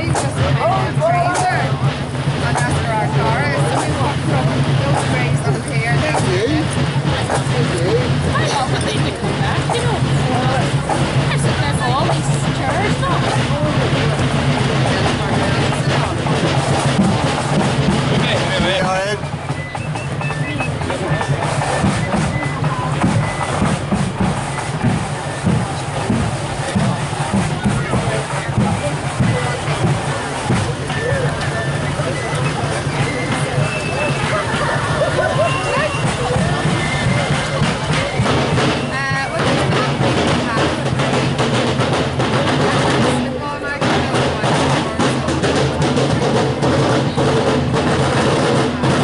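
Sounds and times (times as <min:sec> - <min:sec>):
crowd chatter: 0:00.0 - 0:49.0
marching band with drums: 0:00.0 - 0:49.0.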